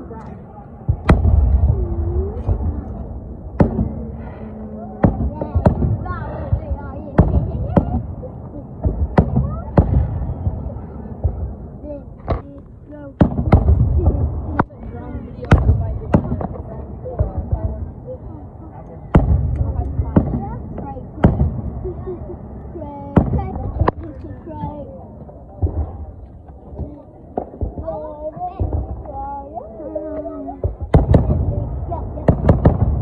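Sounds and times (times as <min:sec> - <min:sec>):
fireworks banging: 0:00.0 - 0:33.0
low rumble: 0:00.0 - 0:33.0.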